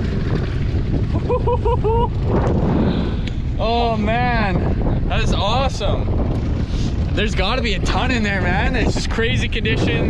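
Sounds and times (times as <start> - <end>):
wind buffeting microphone: 0.0 - 10.0
person laughing: 1.1 - 2.3.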